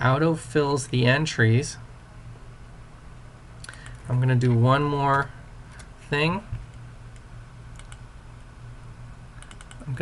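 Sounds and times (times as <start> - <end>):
low electrical hum: 0.0 - 10.0
computer clicks: 3.6 - 4.1, 6.7 - 8.0, 9.4 - 10.0.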